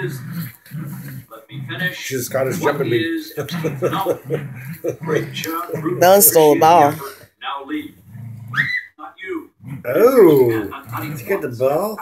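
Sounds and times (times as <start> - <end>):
dog growling and grunting: 0.0 - 7.2, 7.9 - 8.7, 9.6 - 12.0.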